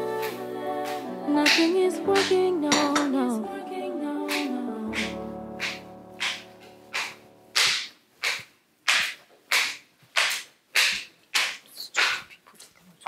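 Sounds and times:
footsteps on hard stairs: 5.0 - 12.4.

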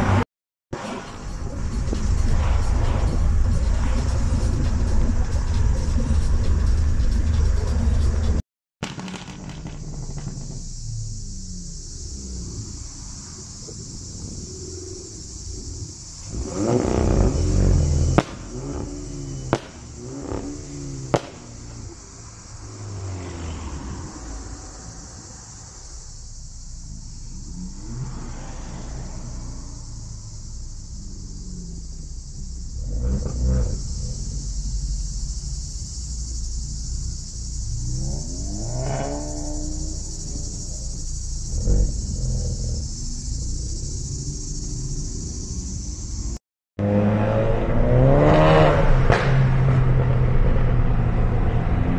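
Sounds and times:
car wind and road noise: 0.0 - 51.9
car engine idling quietly: 3.4 - 38.4, 39.3 - 46.4
steady hiss: 8.9 - 46.4.

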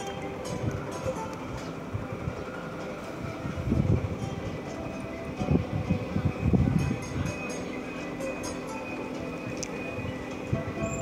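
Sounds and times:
ride mechanical rumble: 0.0 - 11.0.

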